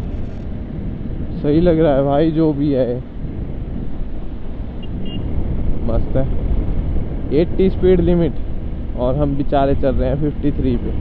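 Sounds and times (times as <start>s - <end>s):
motorcycle engine and road rumble: 0.0s - 11.0s
wind on microphone: 0.0s - 11.0s.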